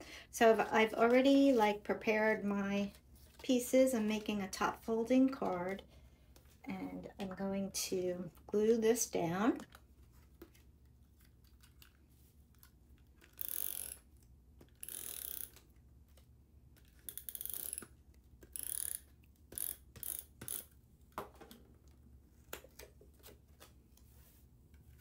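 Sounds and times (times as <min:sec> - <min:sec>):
tape runner ratcheting on paper: 0:13.0 - 0:15.8, 0:16.8 - 0:20.8.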